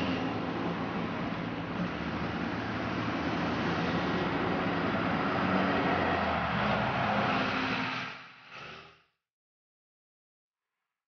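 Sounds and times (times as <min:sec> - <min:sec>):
bus passing close by: 0:00.0 - 0:08.6.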